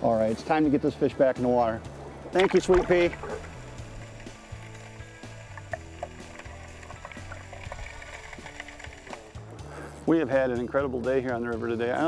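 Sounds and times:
faint clicks: 2.3 - 9.6.

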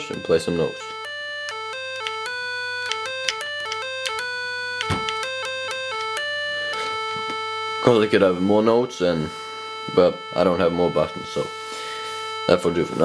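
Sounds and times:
short buzzy electronic notes: 0.0 - 13.0.

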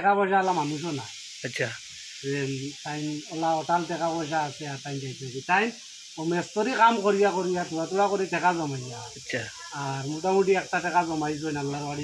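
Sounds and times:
man talking: 0.0 - 12.0
steady high-pitched hiss: 0.0 - 12.0.

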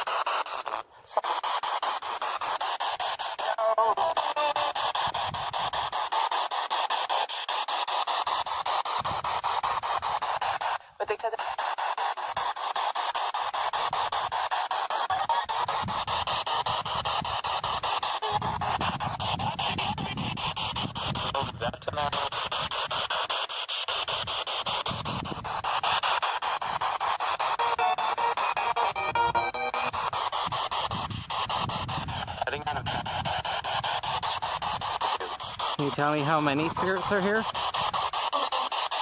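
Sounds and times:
chopped radio static hiss: 0.0 - 39.0
snatches of broadcast music: 0.0 - 39.0
snatches of broadcast voices: 0.0 - 39.0
wind rumbling on microphone: 4.7 - 6.1, 8.3 - 10.6, 15.1 - 23.3, 23.9 - 38.3.

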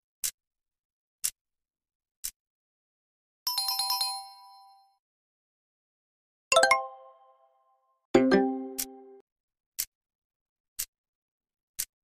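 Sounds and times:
bell-like chime: 3.5 - 5.0.

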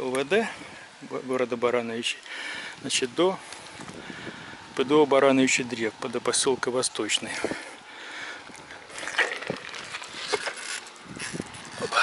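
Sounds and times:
wind and tyre noise: 0.0 - 12.0
bicycle metallic clicks and rattles: 8.8 - 12.0.

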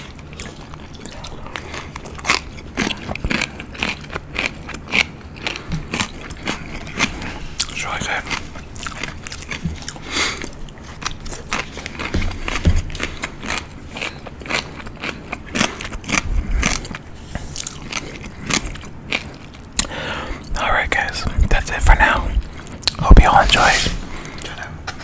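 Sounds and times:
wet chewing clicks and smacks: 0.0 - 23.3.

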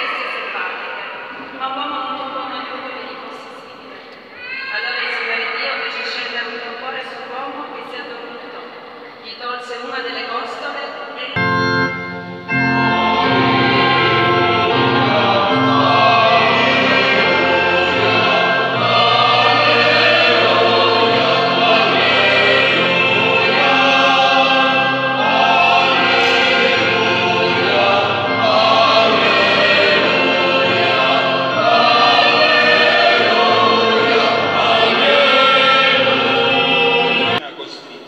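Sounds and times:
low organ notes: 11.4 - 37.4
mixed choir singing a hymn: 11.4 - 37.4.

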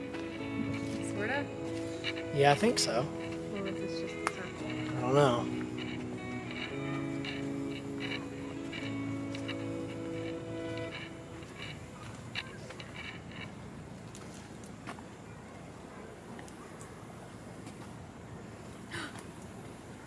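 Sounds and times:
held chords with regular tick: 0.0 - 13.5
faint outdoor noise: 0.0 - 20.0.

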